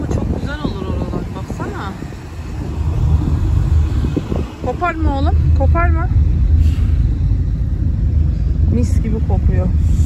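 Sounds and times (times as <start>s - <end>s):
car engine: 0.0s - 10.0s
road noise: 0.0s - 10.0s.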